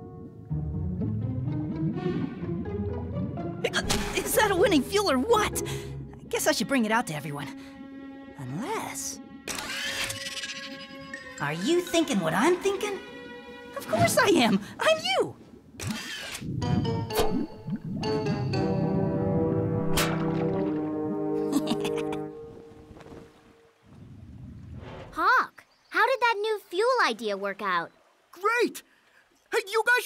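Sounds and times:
soft background music: 0.0s - 14.5s.

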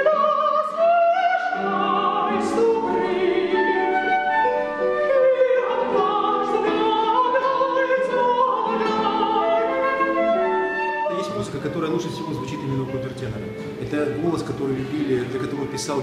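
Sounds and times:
classical guitars playing: 0.0s - 16.0s
countertenor singing: 0.0s - 16.0s
flute: 0.0s - 16.0s.

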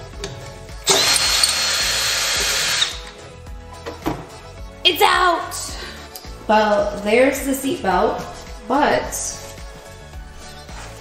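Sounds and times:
cordless drill whining: 0.8s - 3.2s.

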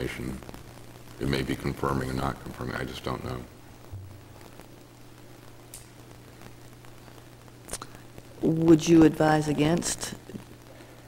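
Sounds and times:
faint hiss: 0.0s - 11.0s
low electrical hum: 0.0s - 11.0s.

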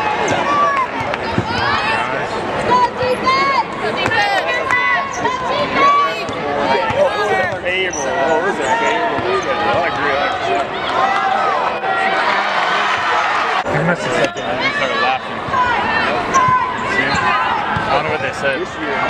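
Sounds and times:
crowd voices: 0.0s - 19.0s.

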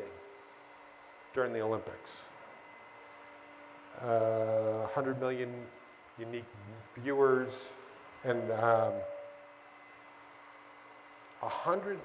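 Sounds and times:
man's voice: 8.3s - 9.0s.

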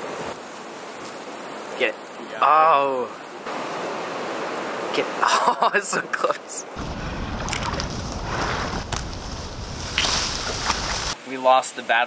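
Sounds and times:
dry stalks rustling: 0.0s - 2.4s, 6.8s - 11.2s
wind buffeting microphone: 6.8s - 11.2s.

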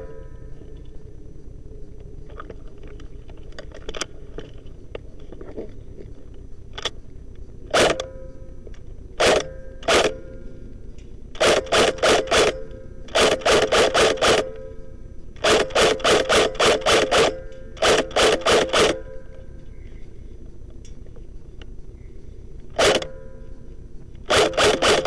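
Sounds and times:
airsoft rifle shots: 7.7s - 8.2s, 9.2s - 10.3s, 11.3s - 14.8s, 15.4s - 19.3s, 22.7s - 23.3s, 24.2s - 25.0s.

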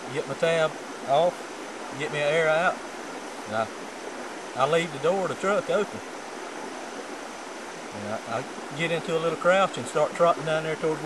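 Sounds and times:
creek rushing: 0.0s - 11.0s.

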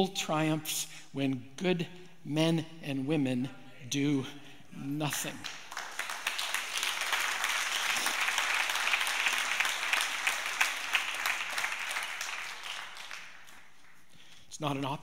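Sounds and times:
congregation applauding: 5.1s - 14.1s.

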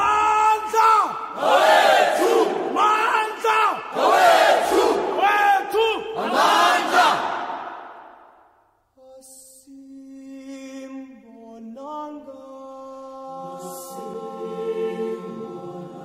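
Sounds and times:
group of voices chanting: 0.6s - 8.3s.

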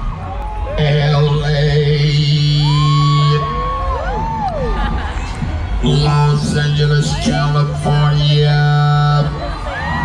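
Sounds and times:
live funk band over loud speakers: 0.0s - 10.0s.

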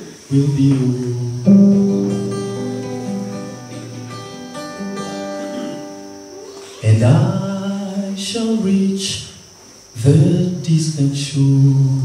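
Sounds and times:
man singing: 0.0s - 2.6s, 6.8s - 9.4s, 10.0s - 12.0s
acoustic guitar hymn accompaniment: 0.0s - 12.0s.

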